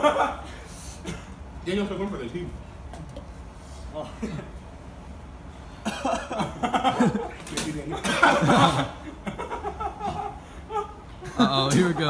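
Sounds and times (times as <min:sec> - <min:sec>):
person coughing: 0:05.8 - 0:07.1, 0:08.0 - 0:09.0.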